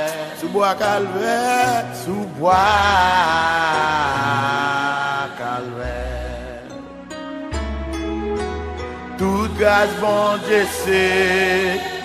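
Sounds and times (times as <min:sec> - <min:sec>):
hymn singing: 0:00.0 - 0:12.0.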